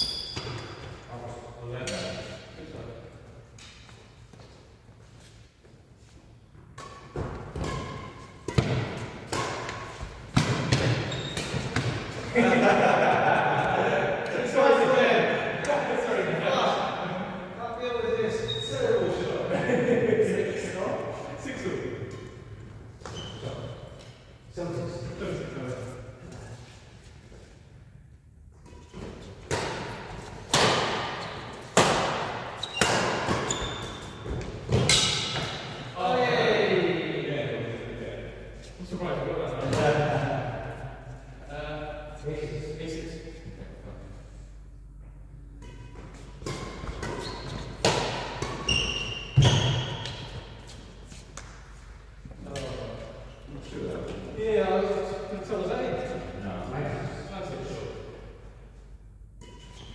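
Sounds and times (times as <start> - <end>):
players talking: 12.2 - 22.2, 35.9 - 40.8.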